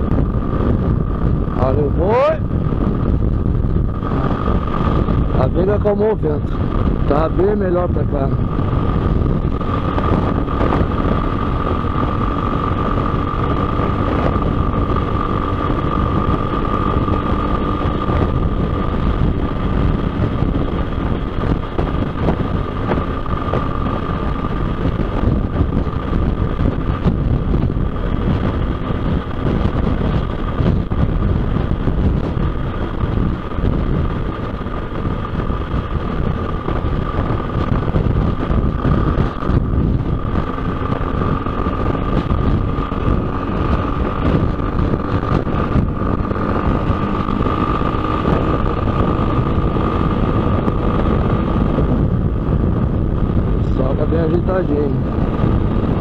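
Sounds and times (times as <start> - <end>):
motorcycle engine drone: 0.0 - 56.0
steady high whine: 0.0 - 56.0
wind rush on microphone: 0.0 - 56.0.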